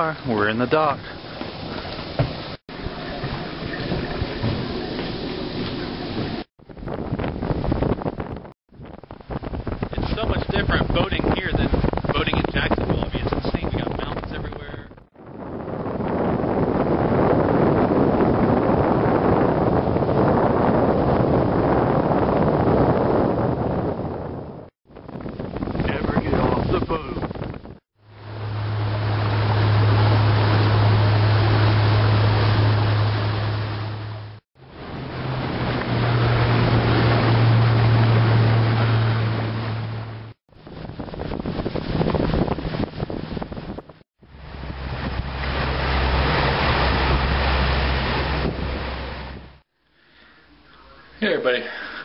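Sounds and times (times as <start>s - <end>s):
rushing water: 0.0s - 23.7s, 24.9s - 49.7s
boat motor running: 0.0s - 24.3s, 24.9s - 49.6s
wind noise on microphone: 1.3s - 49.6s.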